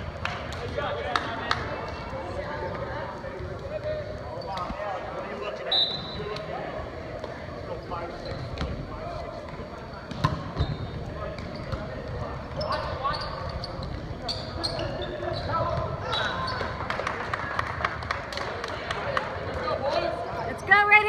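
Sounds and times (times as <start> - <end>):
people shouting and chattering: 0.0 - 21.0.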